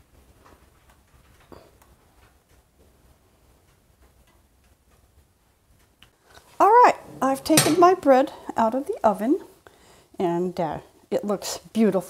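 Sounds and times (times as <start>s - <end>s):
woman speaking: 6.6s - 9.5s, 10.2s - 12.0s.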